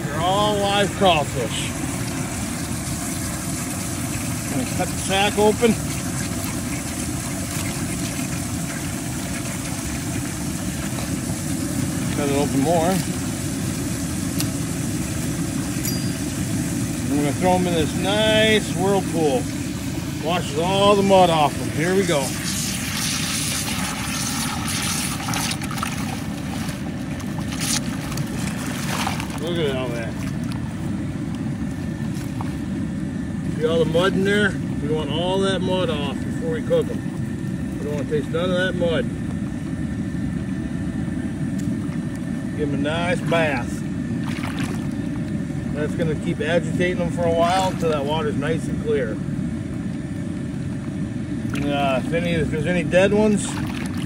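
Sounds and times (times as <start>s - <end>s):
low mechanical rumble: 0.0s - 54.0s
water churning in tub: 0.0s - 54.0s.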